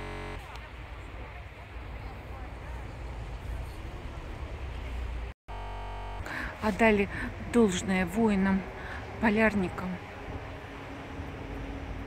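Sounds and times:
held synthesizer chord: 0.0s - 0.4s
outdoor street rumble: 0.0s - 12.0s.

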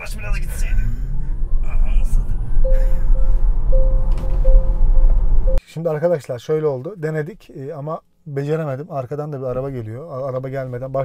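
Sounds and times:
car cabin rumble: 0.0s - 5.6s
short flat tone: 2.6s - 5.6s.

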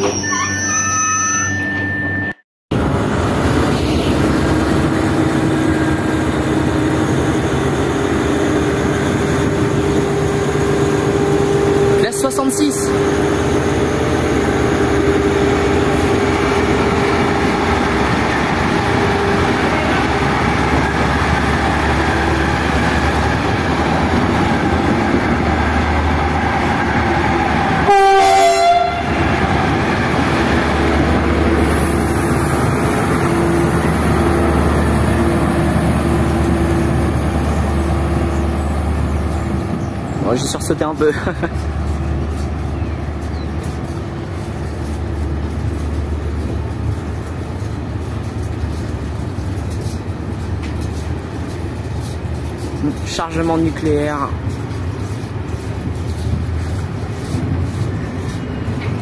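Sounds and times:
diesel locomotive engine rumbling: 0.0s - 59.0s.

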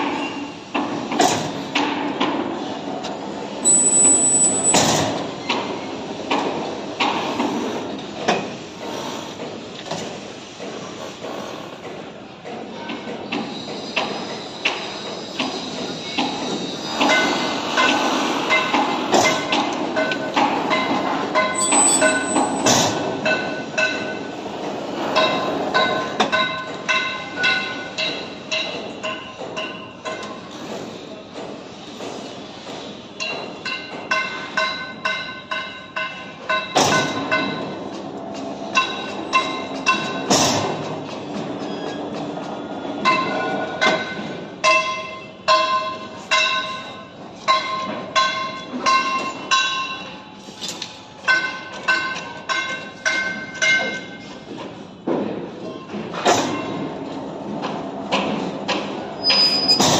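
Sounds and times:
brief high-pitched tone: 3.6s - 4.8s
ringing metallic tones: 3.6s - 4.8s
steel bars clanking: 16.9s - 24.3s.

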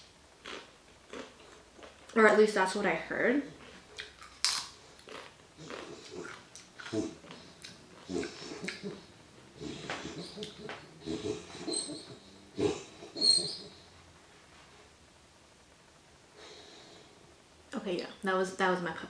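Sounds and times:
puppy wheezing and snorting: 5.6s - 14.0s.

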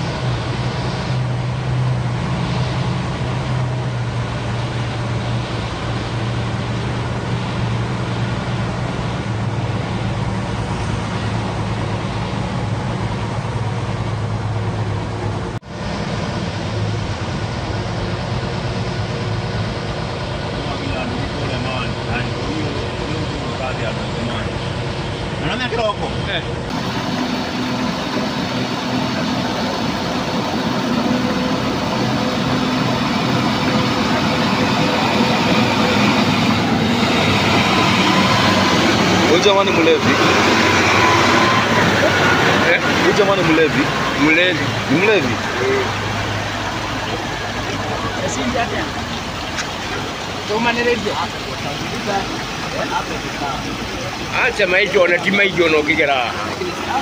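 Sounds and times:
vehicle engine running: 0.0s - 57.0s.

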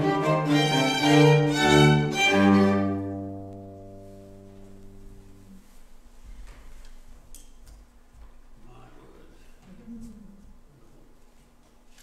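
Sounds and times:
steady low hum: 0.0s - 12.0s
faint murmur of a voice: 8.6s - 11.3s.

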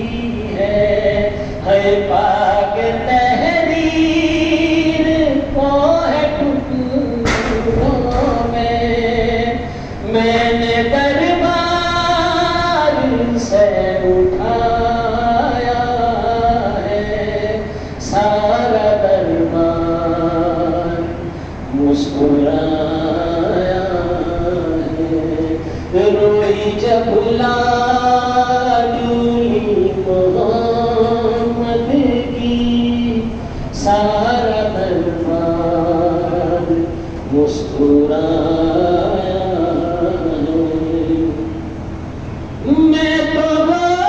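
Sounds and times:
men chanting through a microphone: 0.0s - 42.0s.

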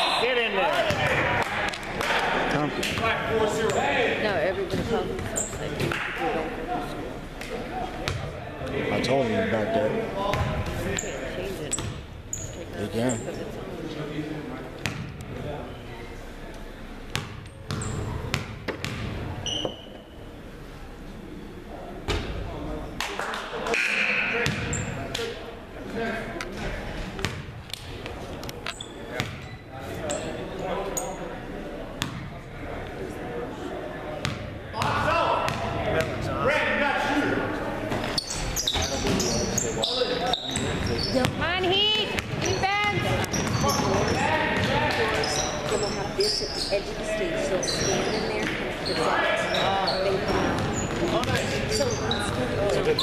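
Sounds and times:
sneakers squeaking: 0.0s - 1.4s, 2.8s - 6.6s, 7.6s - 8.4s, 10.2s - 13.6s, 14.8s - 16.2s, 17.0s - 20.5s, 23.7s - 25.5s, 26.3s - 31.3s, 32.0s - 32.4s, 34.2s - 36.4s, 37.7s - 53.0s
voices of players and spectators: 0.0s - 53.0s.

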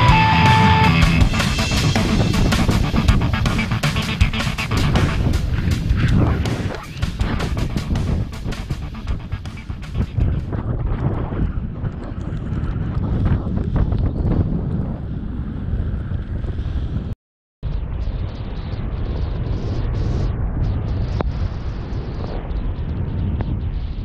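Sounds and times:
rock music with steady beat: 0.0s - 10.5s
wind rumble on microphone: 1.2s - 24.0s.

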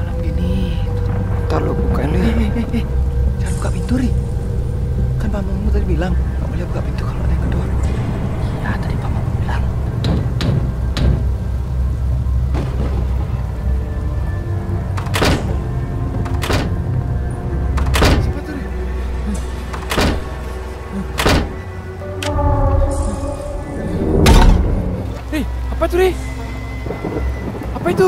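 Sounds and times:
low horror drone: 0.0s - 28.0s
banging on wooden door: 10.0s - 11.4s, 15.0s - 15.6s, 16.3s - 16.8s, 19.7s - 20.4s, 21.2s - 21.6s.

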